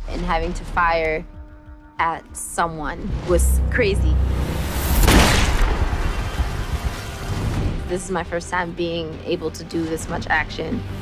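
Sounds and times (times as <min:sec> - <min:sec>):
film background music: 0:00.0 - 0:11.0
gunshot crack: 0:04.9 - 0:07.2.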